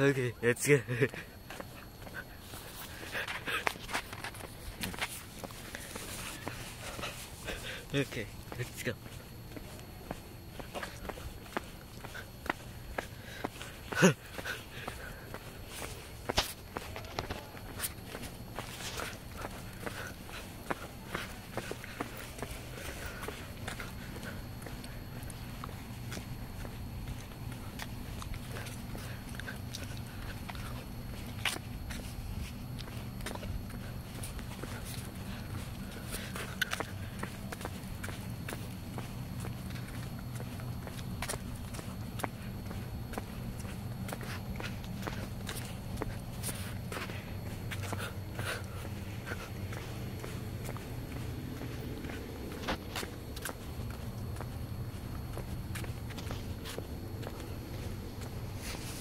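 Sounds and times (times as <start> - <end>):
footsteps on asphalt: 0.8 - 59.0
low steady rumble: 16.9 - 59.0.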